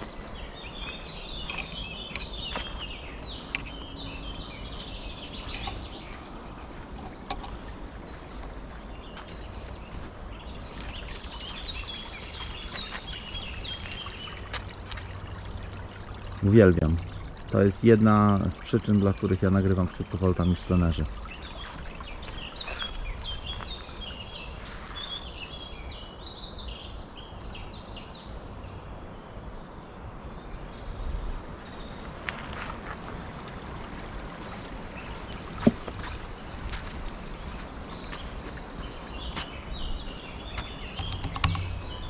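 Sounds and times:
woodland birds singing: 0:00.0 - 0:33.0, 0:33.8 - 0:42.0
sharp click: 0:40.9 - 0:41.7.

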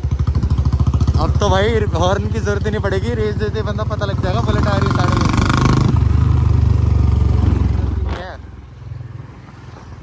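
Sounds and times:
motorcycle exhaust beat: 0:00.0 - 0:06.0.

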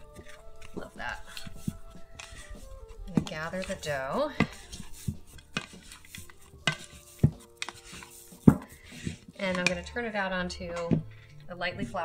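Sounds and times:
scraper scraping dough: 0:00.0 - 0:09.8
scraper knocking against bowl: 0:00.1 - 0:09.8.

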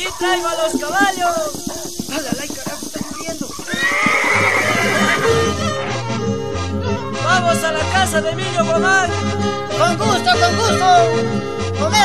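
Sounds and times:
folk music with stepping bass: 0:00.0 - 0:03.4, 0:04.9 - 0:12.0
horse whinnying: 0:00.0 - 0:06.1.

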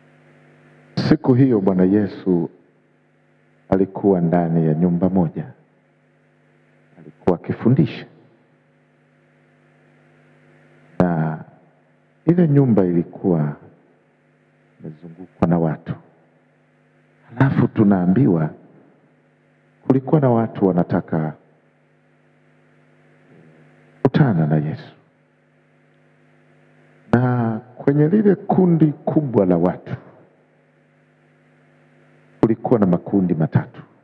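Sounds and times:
faint electrical hum: 0:00.0 - 0:34.0.

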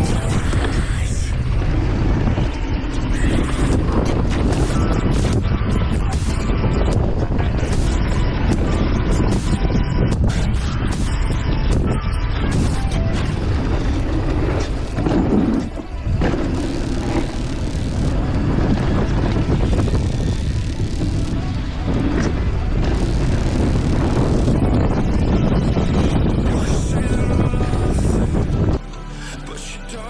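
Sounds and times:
bike rattling: 0:00.0 - 0:28.8
wind buffeting microphone: 0:00.0 - 0:28.8
tyres crossing wooden boardwalk: 0:12.6 - 0:26.8.

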